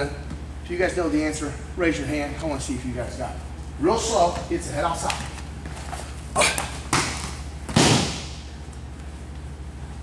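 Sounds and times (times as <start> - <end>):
bodies thudding on foam mat: 6.9 - 8.4.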